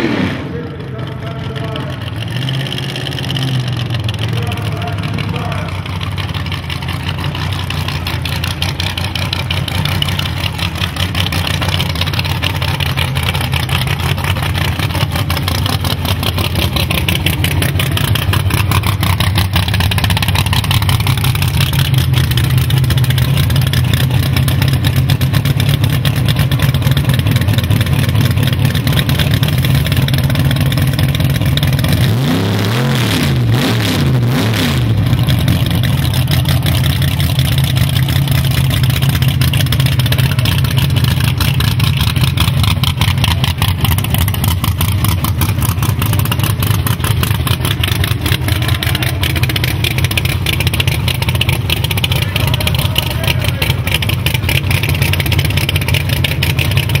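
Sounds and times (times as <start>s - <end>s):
drag car engine idling: 0.1s - 57.0s.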